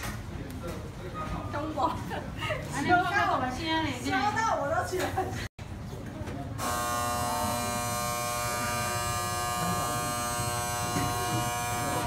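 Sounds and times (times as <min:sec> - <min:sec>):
electric buzzer: 0:06.6 - 0:12.0.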